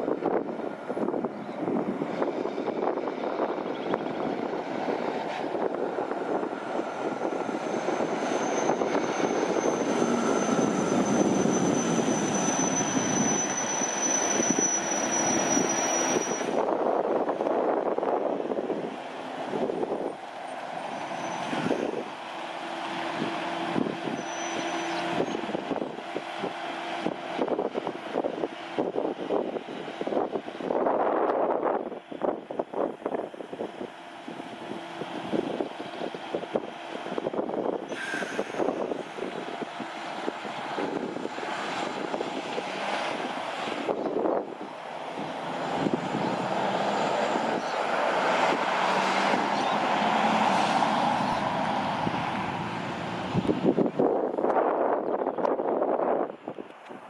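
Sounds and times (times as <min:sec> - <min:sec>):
trucks driving by: 0:00.0 - 0:57.0.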